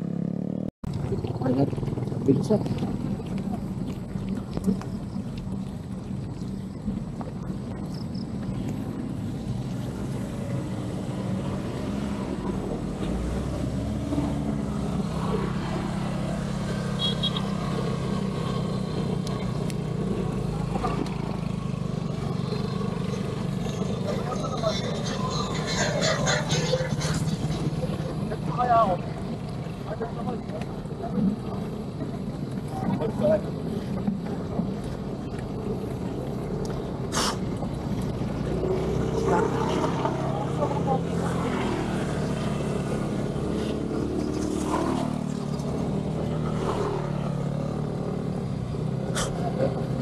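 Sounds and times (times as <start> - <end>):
motorcycle engine passing: 0.0 - 4.2, 7.8 - 32.1, 32.7 - 50.0
road noise: 0.0 - 50.0.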